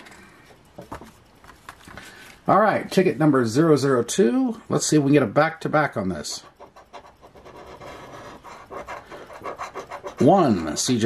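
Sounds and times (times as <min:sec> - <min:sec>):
coin scratching lottery ticket: 0:06.2 - 0:11.0.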